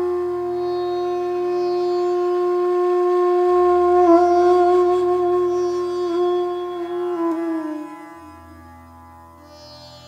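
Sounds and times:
bamboo flute long note: 0:00.0 - 0:08.7.

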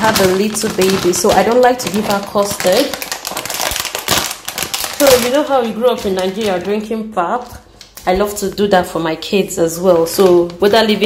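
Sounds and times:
plastic packaging crinkling: 0:00.0 - 0:08.0, 0:09.8 - 0:11.0.

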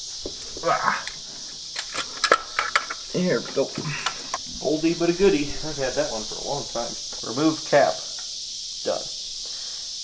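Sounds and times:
high-pitched hiss: 0:00.0 - 0:10.0.

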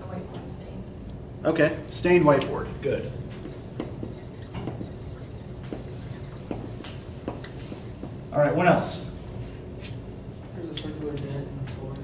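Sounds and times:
marker writing on a whiteboard: 0:03.3 - 0:09.2.

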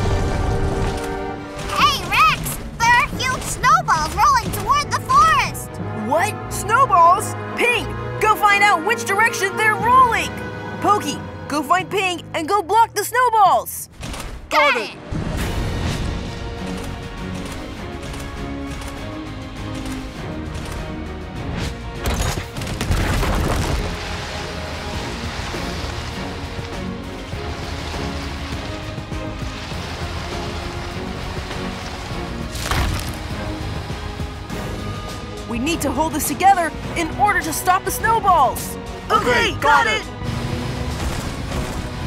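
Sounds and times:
action film music: 0:00.0 - 0:42.0
crashing and wood splintering: 0:22.0 - 0:33.6, 0:40.2 - 0:42.0.

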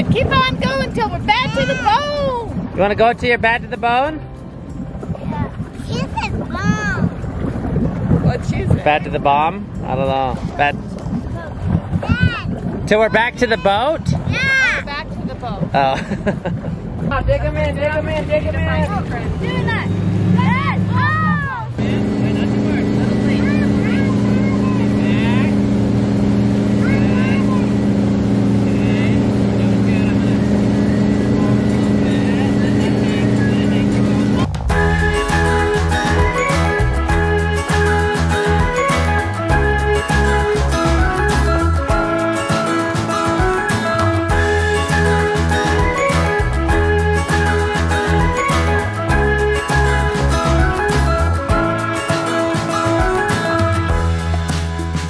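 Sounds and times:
wind buffeting microphone: 0:00.0 - 0:20.2
boat engine running: 0:00.0 - 0:55.0
rush of boat wake: 0:00.0 - 0:55.0.

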